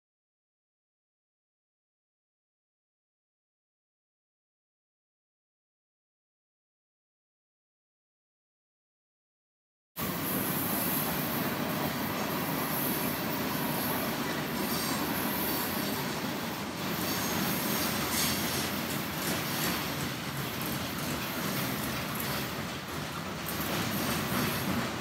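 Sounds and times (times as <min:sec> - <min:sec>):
freight train rolling past: 0:10.0 - 0:25.0.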